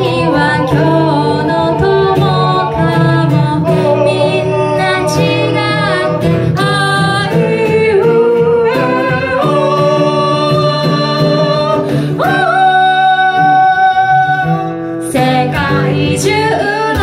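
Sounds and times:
strummed acoustic guitar: 0:00.0 - 0:17.0
woman and man singing together: 0:00.0 - 0:17.0.

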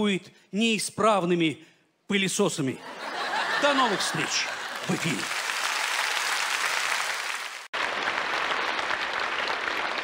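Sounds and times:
audience applauding: 0:03.2 - 0:10.0.

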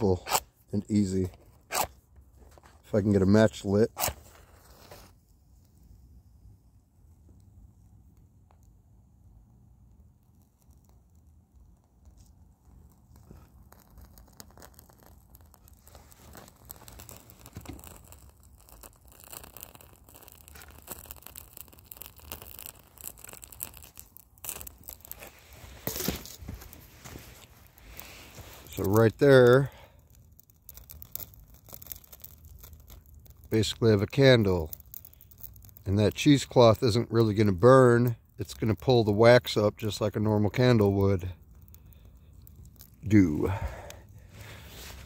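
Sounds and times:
burning match crackling: 0:00.0 - 0:05.8, 0:10.1 - 0:45.0.

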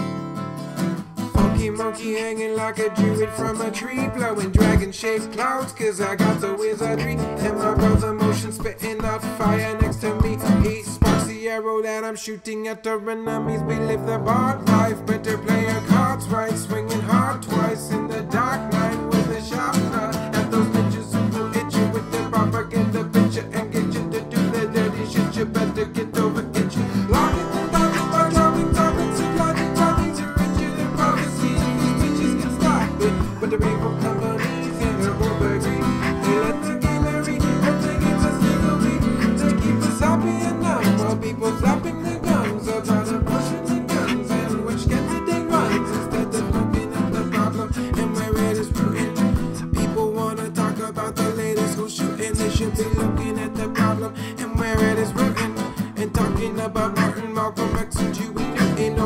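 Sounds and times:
acoustic guitars playing: 0:00.0 - 0:11.5, 0:13.2 - 0:59.0
percussive beat of sharp taps: 0:07.8 - 0:08.2, 0:09.8 - 0:11.3, 0:34.8 - 0:41.0, 0:44.9 - 0:50.0, 0:52.3 - 0:53.4, 0:54.6 - 0:55.6.

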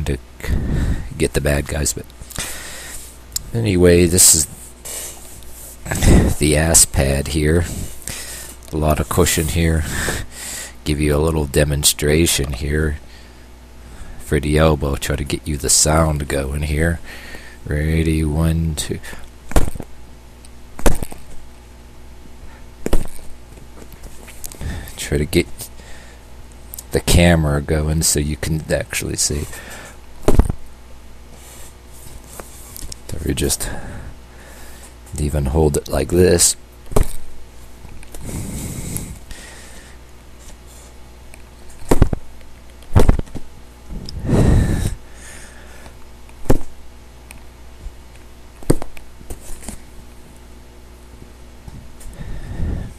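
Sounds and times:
dull thuds on a cushion: 0:19.5 - 0:19.9, 0:22.8 - 0:23.3, 0:30.2 - 0:30.6, 0:41.8 - 0:42.2, 0:42.9 - 0:43.4
elbow thump on cushioned seat: 0:19.5 - 0:19.9, 0:41.8 - 0:42.2.

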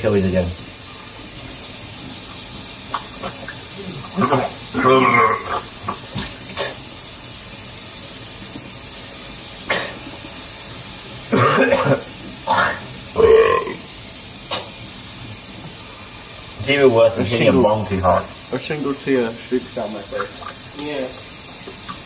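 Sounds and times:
steady hiss: 0:00.0 - 0:22.0
throaty burp-like sounds: 0:03.2 - 0:06.0, 0:09.7 - 0:10.1, 0:11.3 - 0:13.9.

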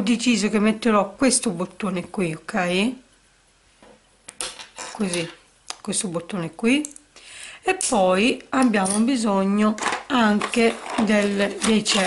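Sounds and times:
woman speaking: 0:00.0 - 0:03.1, 0:04.9 - 0:07.0, 0:07.6 - 0:12.0.

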